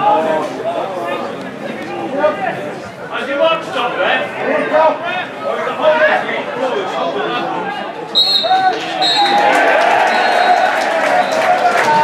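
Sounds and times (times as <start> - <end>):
crowd cheering: 8.0 - 12.0
referee's whistle blasts: 8.1 - 9.5
voices shouting: 8.1 - 12.0.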